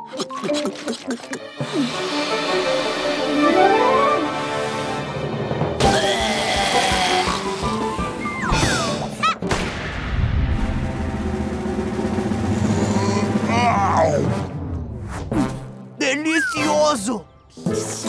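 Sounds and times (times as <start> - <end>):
cartoon background music: 0.0 - 9.8, 10.5 - 18.0.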